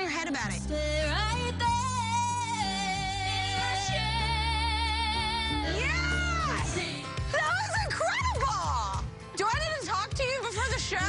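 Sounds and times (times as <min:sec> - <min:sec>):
band backing: 0:00.0 - 0:11.0
women singing pop duet: 0:00.0 - 0:11.0.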